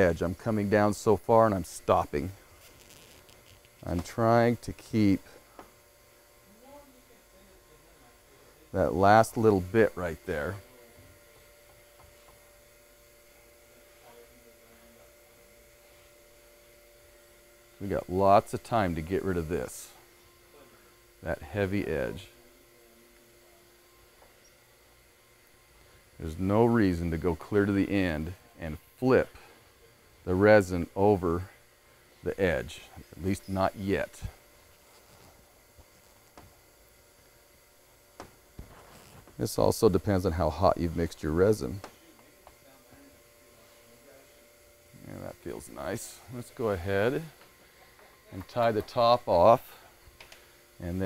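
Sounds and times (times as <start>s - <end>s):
faint background hum: 0.0s - 51.0s.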